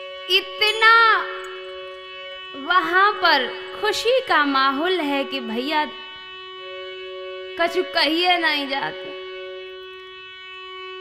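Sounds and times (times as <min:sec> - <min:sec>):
sustained droning chord: 0:00.0 - 0:11.0.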